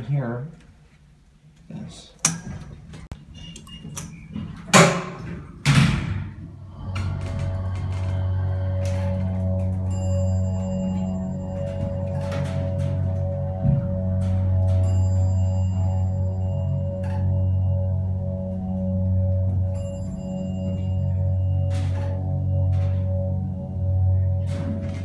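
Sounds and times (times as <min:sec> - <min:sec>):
elevator doors thunking shut: 0:02.3 - 0:18.0, 0:19.0 - 0:25.0
elevator pump motor humming: 0:06.3 - 0:25.0.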